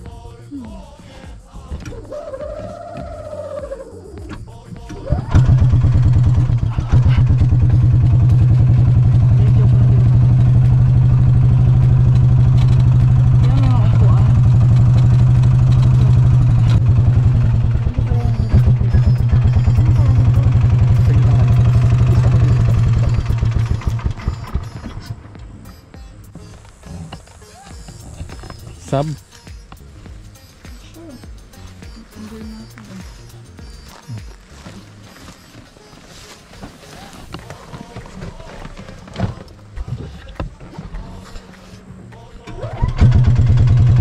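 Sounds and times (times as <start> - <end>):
golf cart engine running: 4.9 - 26.8, 42.6 - 44.0.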